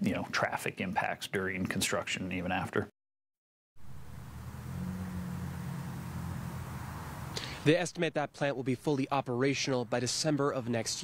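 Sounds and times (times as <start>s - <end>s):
vehicle engine hum: 3.8s - 7.6s.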